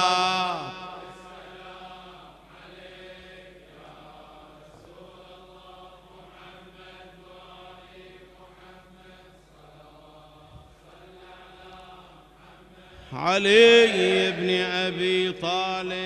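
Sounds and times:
men chanting in unison: 0.0s - 16.0s.

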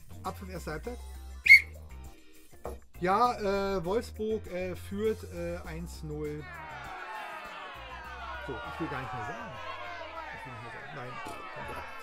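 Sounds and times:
referee's whistle blast: 1.5s - 1.8s.

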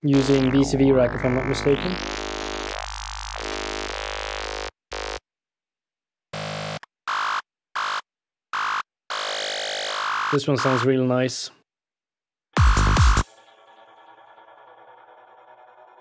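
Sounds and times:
buzzy synthesizer lead: 0.0s - 5.2s, 8.6s - 10.9s.

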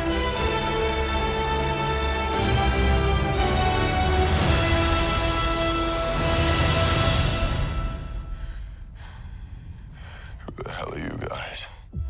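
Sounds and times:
trailer music: 0.0s - 10.0s
person gasping breath: 8.2s - 10.4s
faint low rumble: 8.3s - 12.0s.

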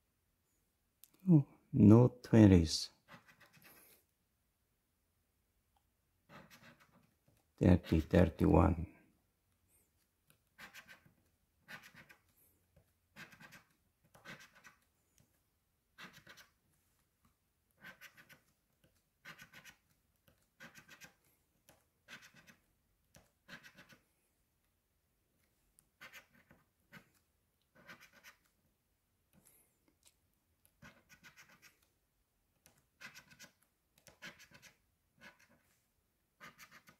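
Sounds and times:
coin scratching lottery ticket: 3.1s - 3.8s, 6.3s - 7.1s, 10.6s - 12.2s, 13.1s - 14.8s, 16.0s - 16.6s, 17.8s - 18.4s, 19.2s - 19.8s, 20.6s - 21.2s, 22.1s - 22.6s, 23.4s - 24.0s, 26.0s - 27.1s, 27.8s - 28.5s, 30.8s - 31.7s, 33.0s - 33.5s, 34.1s - 35.6s, 36.4s - 36.9s.

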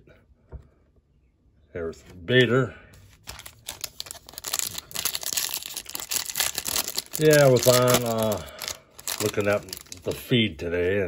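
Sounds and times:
foil wrapper crinkling and tearing: 3.2s - 10.3s.

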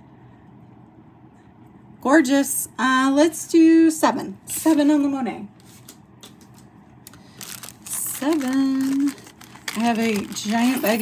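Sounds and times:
plastic bag crinkling: 7.1s - 11.0s.

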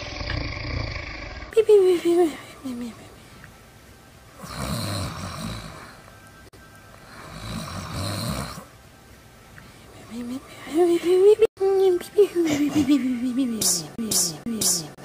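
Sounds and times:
rasping snores: 4.4s - 6.0s, 7.1s - 8.7s
high sliding vocal sound: 13.2s - 15.0s.

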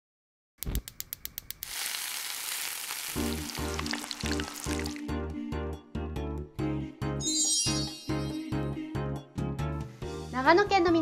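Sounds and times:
gas burner hissing and crackling: 1.6s - 5.0s.

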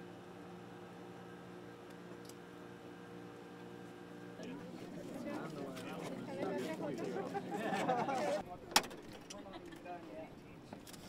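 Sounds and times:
people talking indistinctly: 4.4s - 10.5s.

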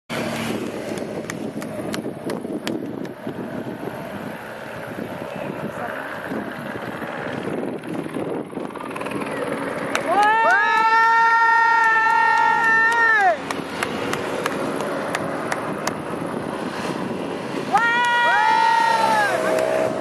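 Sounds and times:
helicopter hovering: 0.1s - 20.0s
motorcycle engines passing: 0.1s - 20.0s
wind on microphone: 0.1s - 20.0s.

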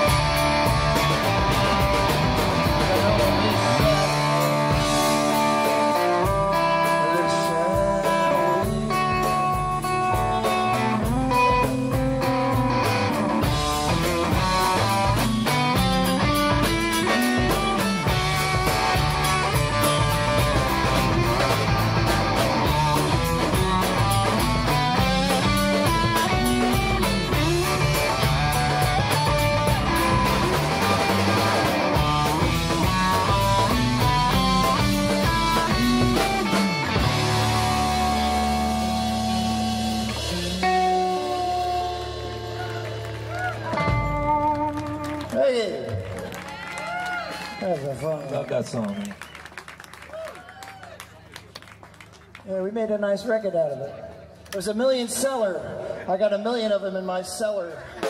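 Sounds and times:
electric bass: 0.0s - 46.4s
electric guitar: 0.0s - 47.7s
drums: 0.0s - 58.0s.

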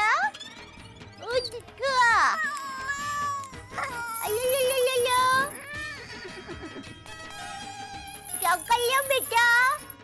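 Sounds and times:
comic music with tinkling notes: 0.0s - 10.0s.

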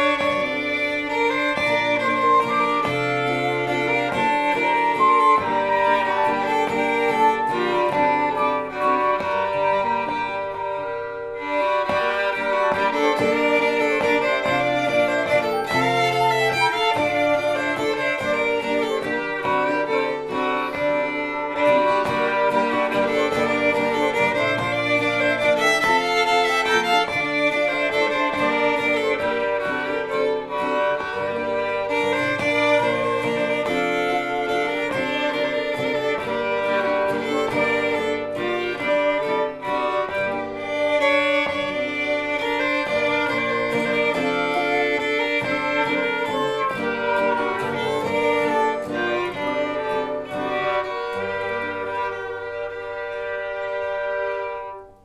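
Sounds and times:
acoustic guitar accompaniment: 0.0s - 55.0s
bowed fiddle melody: 0.0s - 55.0s.

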